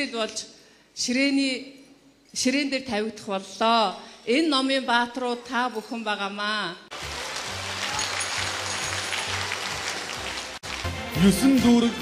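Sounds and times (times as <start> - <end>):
audience applauding: 6.9 - 11.8.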